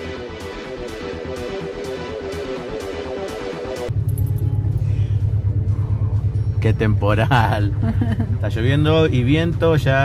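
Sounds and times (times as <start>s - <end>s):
electronic music with beat: 0.0s - 6.6s.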